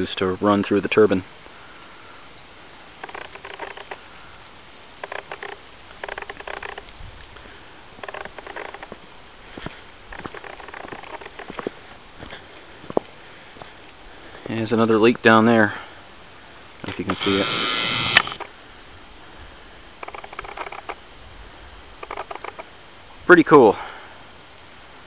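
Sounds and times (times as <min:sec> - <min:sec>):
faint steady hiss: 0:00.0 - 0:25.0
footsteps and scuffs: 0:08.9 - 0:13.8.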